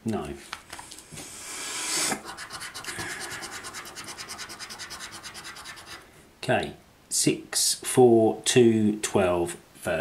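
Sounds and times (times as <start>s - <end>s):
coin scraping a scratchcard: 2.2s - 6.0s.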